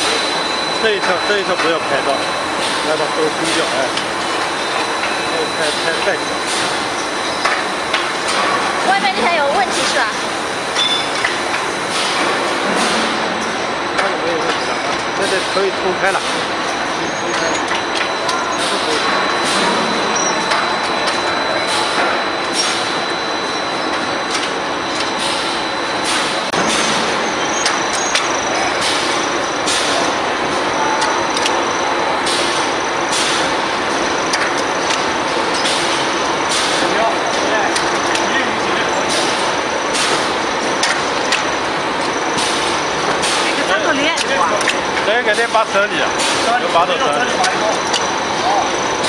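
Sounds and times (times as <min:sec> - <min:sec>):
production line machinery din: 0:00.0 - 0:49.0.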